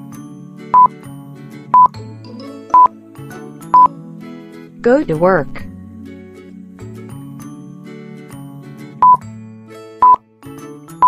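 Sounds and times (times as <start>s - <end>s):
light background music: 0.0s - 11.0s.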